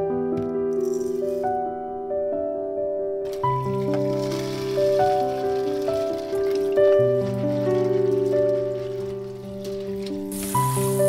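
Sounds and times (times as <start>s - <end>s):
soft piano music: 0.0s - 11.0s
dried berries rattling into bowl: 3.3s - 11.0s.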